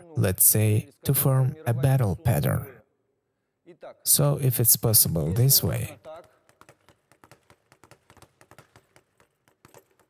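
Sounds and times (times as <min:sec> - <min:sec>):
speed bag taps: 0:06.0 - 0:10.0.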